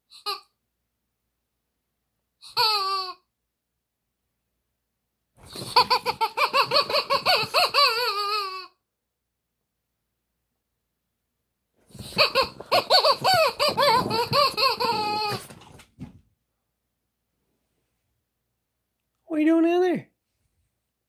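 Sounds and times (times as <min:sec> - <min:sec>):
rubber chicken toy squawking: 0:00.1 - 0:00.5, 0:02.4 - 0:03.3, 0:05.4 - 0:08.8, 0:11.9 - 0:15.7.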